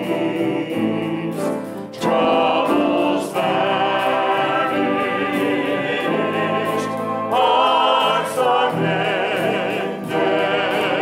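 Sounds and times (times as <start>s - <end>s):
choir singing: 0.0s - 11.0s
orchestra accompaniment: 0.0s - 11.0s.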